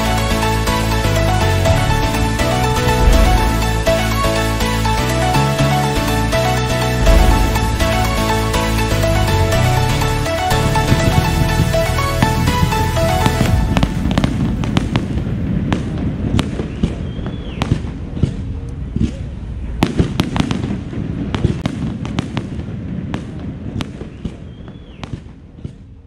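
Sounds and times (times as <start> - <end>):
music: 0.0 - 14.7
low rumble of firework bursts: 0.6 - 26.0
fireworks cracking and popping: 1.6 - 4.3, 7.0 - 25.9
firework whistle: 16.5 - 17.8.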